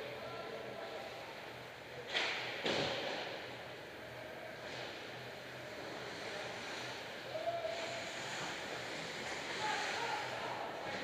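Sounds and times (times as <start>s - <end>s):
hollow arena hall noise: 0.0s - 11.0s
skates scraping on ice: 5.7s - 7.0s, 7.7s - 11.0s.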